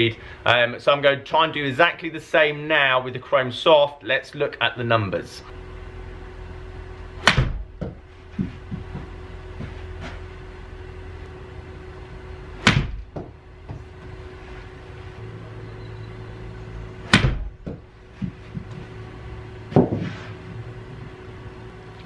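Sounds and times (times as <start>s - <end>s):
steady equipment hum: 0.0s - 22.0s
dull knock: 7.3s - 9.1s, 17.1s - 18.9s.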